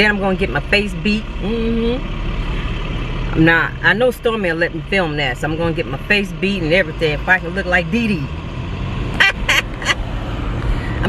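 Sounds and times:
car cabin rumble: 0.0s - 8.4s, 9.0s - 11.0s.

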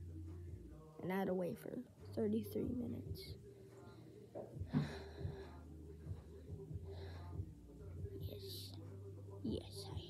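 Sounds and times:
boy breathing puffs: 3.6s - 7.4s.

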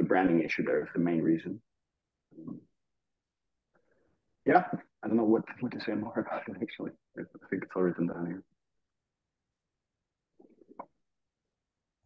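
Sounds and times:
faint voice: 4.5s - 8.4s.

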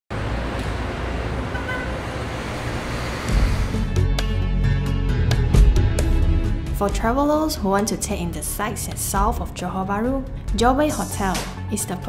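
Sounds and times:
street traffic: 0.1s - 4.1s
music with deep bass: 3.3s - 11.8s.

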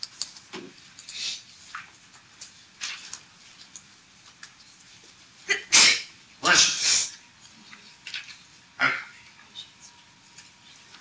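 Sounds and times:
person sneezing: 5.5s - 7.1s.

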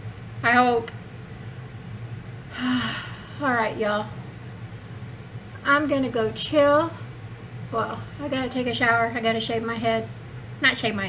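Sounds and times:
woman's breathy sigh: 2.5s - 3.4s.

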